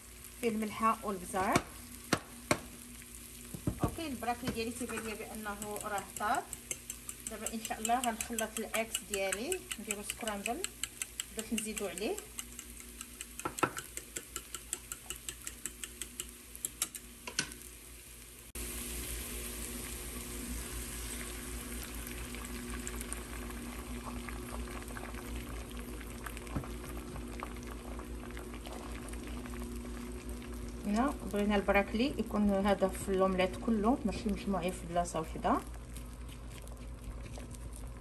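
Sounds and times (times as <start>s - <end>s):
egg sizzling in a pan: 0.0s - 38.0s
eggs beaten in metal bowl: 3.5s - 17.5s.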